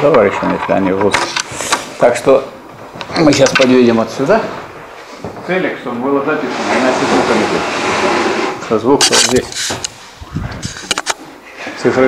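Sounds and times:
man speaking: 0:08.7 - 0:09.8.

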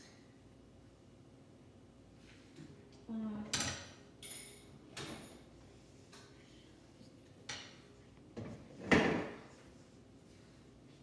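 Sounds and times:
kitchen objects clattering: 0:08.4 - 0:09.5.

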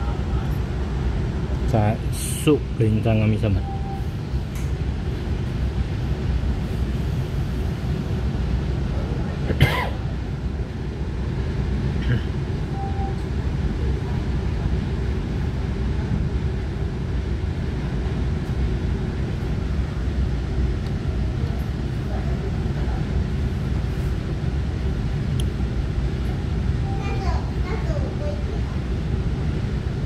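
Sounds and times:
train interior rumble: 0:00.0 - 0:30.0.

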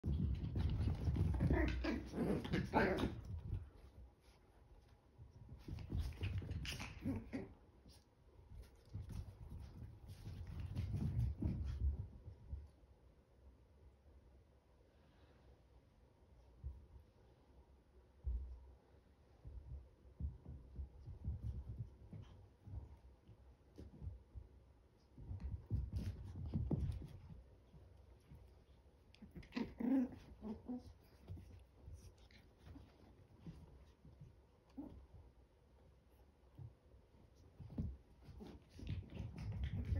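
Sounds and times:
puppies scuffling on carpet: 0:00.0 - 0:13.1, 0:18.2 - 0:39.9.

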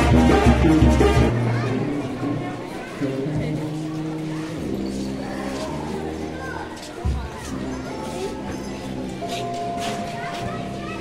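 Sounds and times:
band playing long low notes: 0:00.0 - 0:04.3
crowd chatter: 0:00.0 - 0:11.0.

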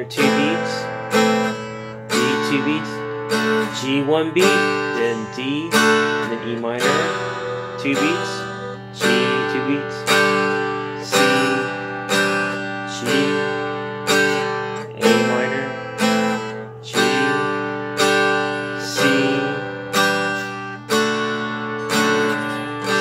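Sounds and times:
acoustic guitar chords ringing: 0:00.0 - 0:23.0.

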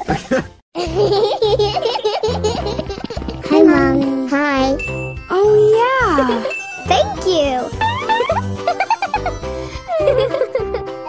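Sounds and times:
children's background music: 0:00.8 - 0:11.0.

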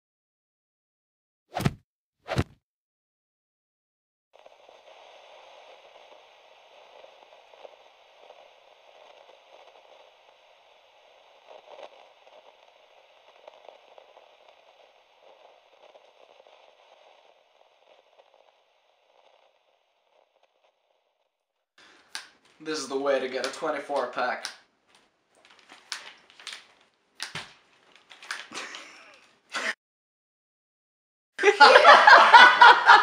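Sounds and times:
crackling static hiss: 0:04.4 - 0:29.8.

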